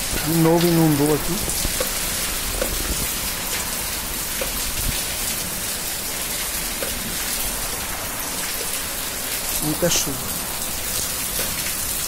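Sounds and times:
heavy rain splashing into water: 0:00.0 - 0:12.0.

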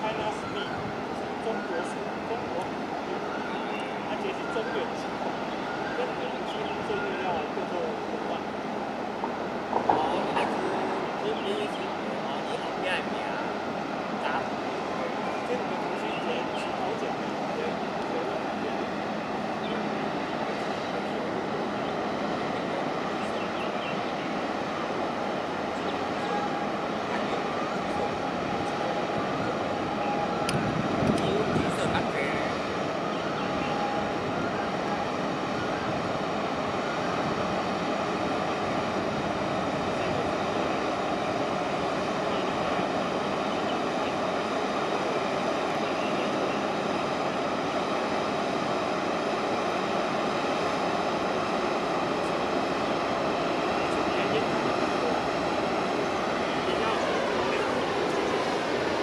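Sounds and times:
ship engine rumble and hum: 0:00.0 - 0:59.0.

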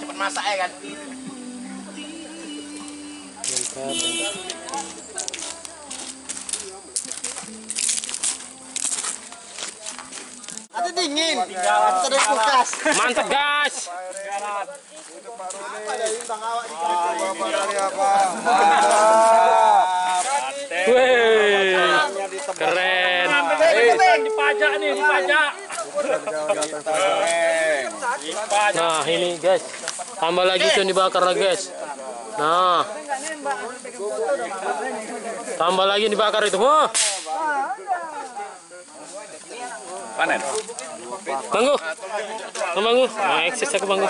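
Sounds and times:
men calling out: 0:00.0 - 0:05.7, 0:15.8 - 0:28.2
faint steady hiss: 0:00.0 - 0:44.0
men talking in background: 0:00.0 - 0:44.0.

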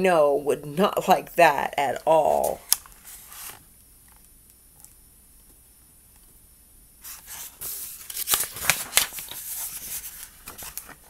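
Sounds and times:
book pages turning: 0:02.2 - 0:03.6, 0:07.0 - 0:11.0
paper rustling: 0:02.3 - 0:03.6, 0:07.0 - 0:11.0.

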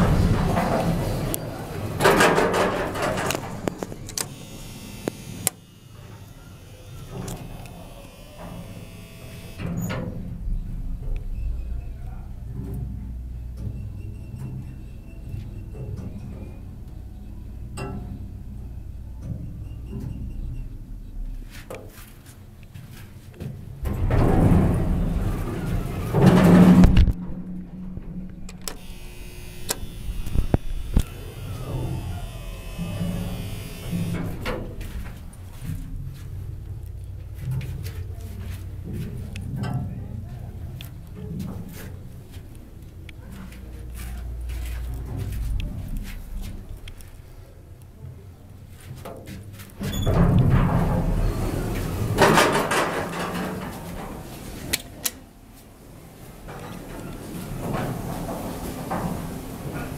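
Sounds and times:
elevator door sliding open: 0:00.0 - 0:05.4, 0:23.6 - 0:36.0, 0:49.8 - 0:59.9
elevator rumble and hum: 0:00.0 - 0:59.9.

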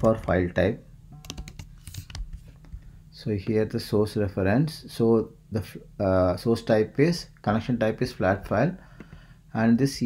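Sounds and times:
keyboard typing: 0:01.2 - 0:02.4.

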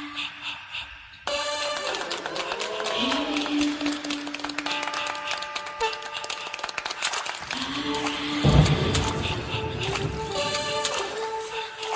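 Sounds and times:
deep musical hit: 0:08.4 - 0:10.7.

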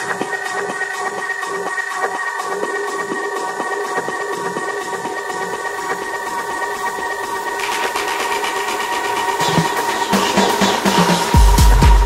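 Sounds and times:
fast ticking high percussion: 0:00.0 - 0:12.0.

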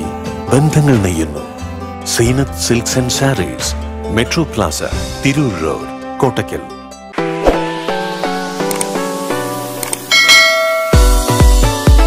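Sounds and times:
bright chime: 0:10.1 - 0:11.2
plucked bell-like notes: 0:10.1 - 0:11.4.

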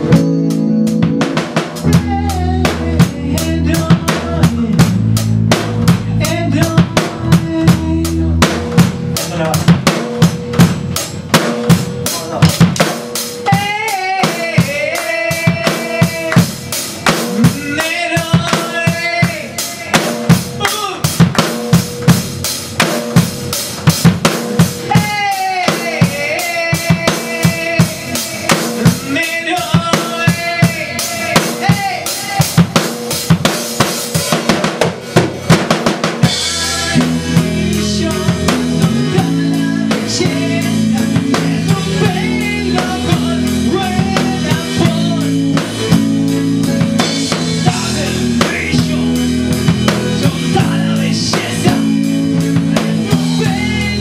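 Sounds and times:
lead guitar with bent notes: 0:00.0 - 0:03.4
electric guitars: 0:00.0 - 0:34.6, 0:35.4 - 0:54.0
drum kit fast beat: 0:00.0 - 0:54.0.

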